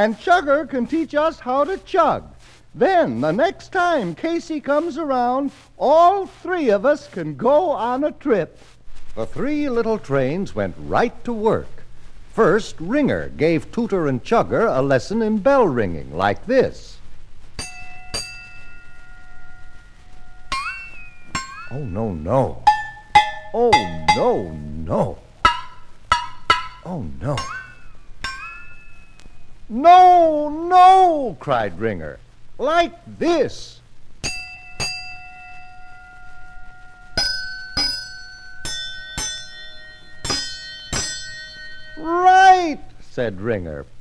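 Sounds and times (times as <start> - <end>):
bell ringing: 34.2 - 42.4.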